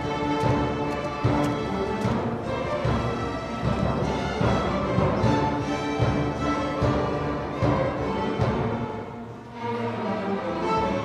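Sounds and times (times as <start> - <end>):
string orchestra playing: 0.0 - 11.0.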